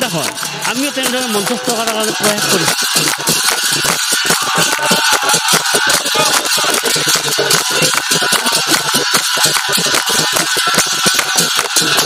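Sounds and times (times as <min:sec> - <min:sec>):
drum beating: 0:00.0 - 0:12.0
hand-clapping: 0:00.0 - 0:12.0.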